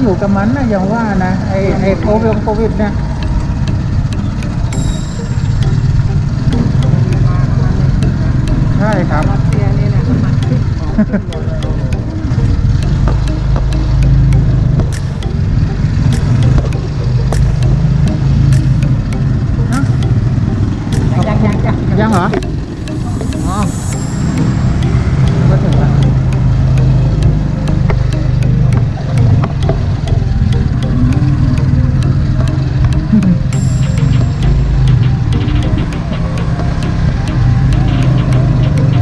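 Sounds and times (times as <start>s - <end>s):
motorcycle engine running: 0.0s - 39.0s
road and wind noise: 0.0s - 39.0s.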